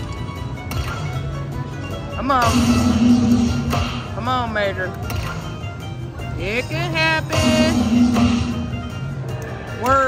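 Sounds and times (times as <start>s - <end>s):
slot machine bonus music: 0.0s - 10.0s.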